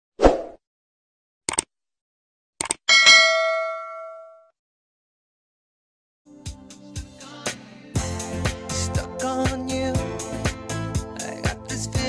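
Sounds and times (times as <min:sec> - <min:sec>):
notification bell ding: 0:02.9 - 0:04.4.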